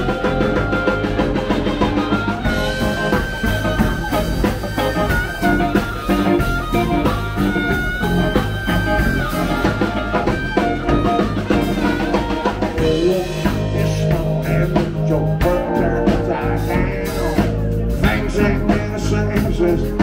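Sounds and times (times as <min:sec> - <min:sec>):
drum kit: 0:00.0 - 0:20.0
electric guitar: 0:00.0 - 0:20.0
harmonica bending notes: 0:00.0 - 0:20.0.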